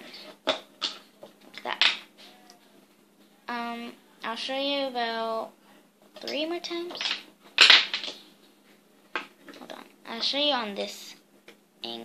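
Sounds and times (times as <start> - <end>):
plastic rustling: 6.2 - 9.8.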